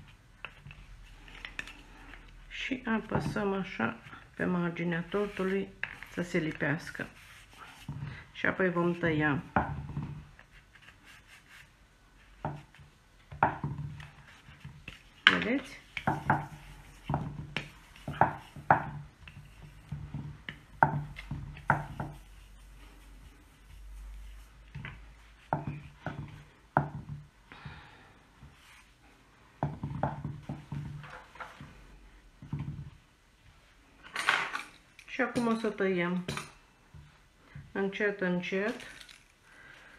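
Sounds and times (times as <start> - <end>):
fondant smoother scraping on cake: 4.8 - 8.3, 14.0 - 26.5.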